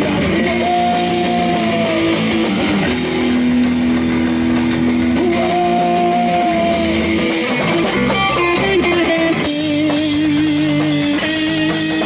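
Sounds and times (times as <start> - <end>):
drums and cymbals: 0.0 - 12.0
electric guitar and bass chord: 0.0 - 12.0.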